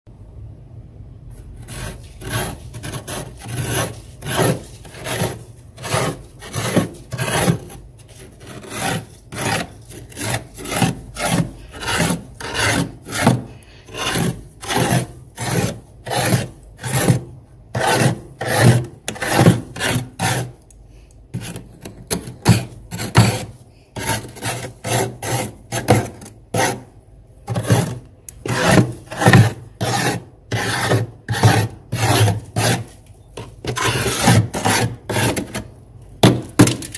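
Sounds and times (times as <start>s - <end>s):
spoon scraping frost: 1.3s - 20.7s, 21.3s - 36.9s.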